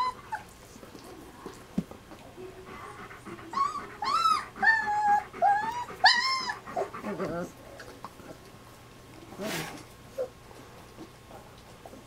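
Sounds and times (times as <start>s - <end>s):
dog whimpering: 0.0s - 0.5s, 2.7s - 7.6s.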